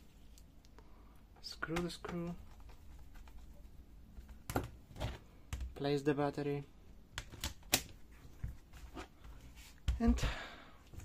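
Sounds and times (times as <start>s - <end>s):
person speaking: 1.3s - 3.4s, 5.7s - 6.8s, 9.8s - 10.7s.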